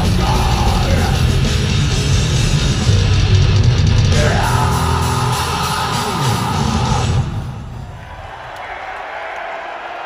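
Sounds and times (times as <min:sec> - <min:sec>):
heavy metal band playing live: 0:00.0 - 0:07.8
crowd noise: 0:00.0 - 0:10.0.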